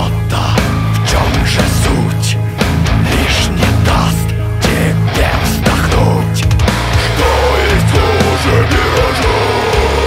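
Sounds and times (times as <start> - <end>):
heavy metal band playing: 0.0 - 10.0.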